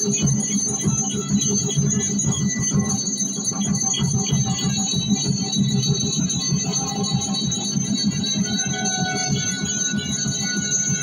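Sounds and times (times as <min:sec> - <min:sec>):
folk drums: 0:00.0 - 0:11.0
jingling bells: 0:00.0 - 0:11.0.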